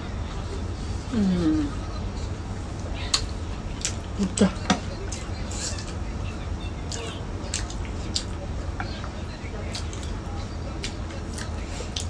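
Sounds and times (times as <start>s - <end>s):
steady low hum: 0.0s - 12.0s
person chewing: 6.9s - 8.4s, 10.8s - 12.0s.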